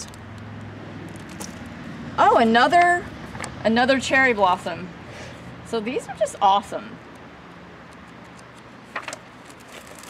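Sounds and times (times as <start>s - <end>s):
plastic packets and paper rustling: 8.9s - 10.0s.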